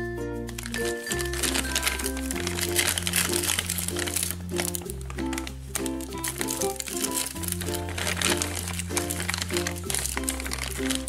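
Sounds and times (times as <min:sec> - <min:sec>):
background music: 0:00.0 - 0:11.0
plastic bags crinkling: 0:00.4 - 0:11.0.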